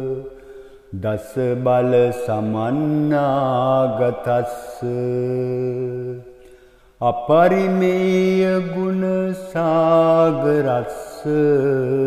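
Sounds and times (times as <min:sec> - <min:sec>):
man chanting: 0:00.0 - 0:06.4, 0:07.0 - 0:12.0.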